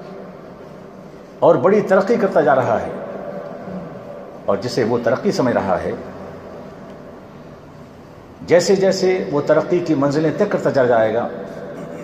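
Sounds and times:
faint background hum and hiss: 0.0 - 12.0.

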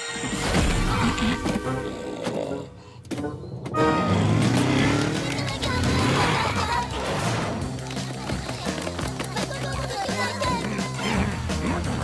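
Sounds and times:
music: 0.0 - 12.0
cartoon quad bike engine: 3.8 - 12.0.

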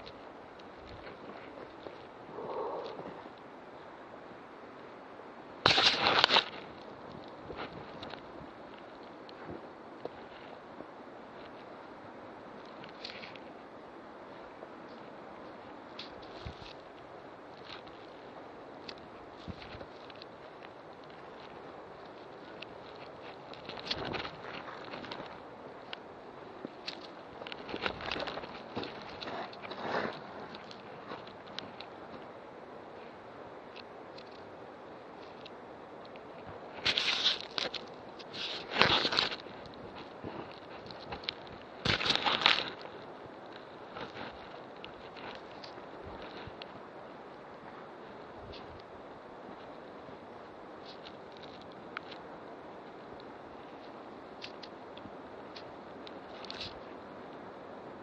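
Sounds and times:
brushing rustle: 14.2 - 33.2, 36.4 - 48.8.

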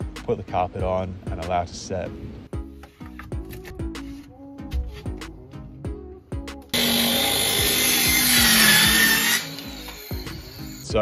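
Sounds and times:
background music: 0.0 - 11.0
circular saw cutting plywood: 6.8 - 11.0.

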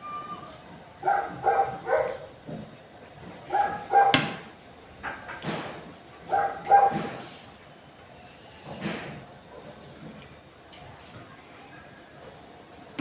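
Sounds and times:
dog barking: 1.0 - 2.3, 3.5 - 4.4, 6.3 - 7.2.

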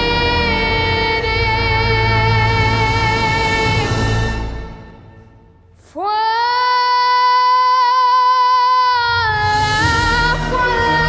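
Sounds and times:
symphony orchestra: 0.0 - 5.3
girl singing with vibrato: 5.8 - 11.0.

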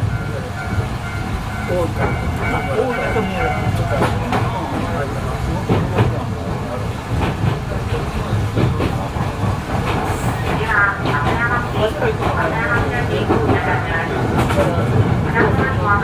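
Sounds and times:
electric train rumble: 0.0 - 16.0.

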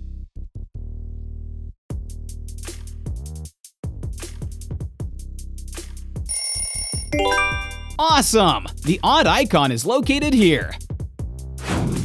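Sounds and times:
quiz jingle chime and bells: 6.3 - 8.7.

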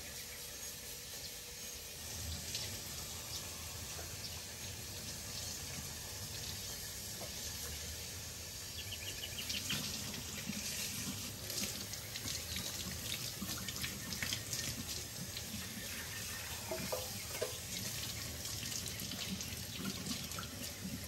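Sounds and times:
faucet running into sink: 9.4 - 21.0.

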